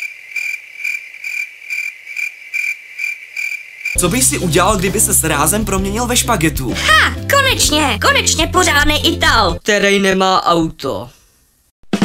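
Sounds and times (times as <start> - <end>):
crickets chirping: 0.0 - 4.0.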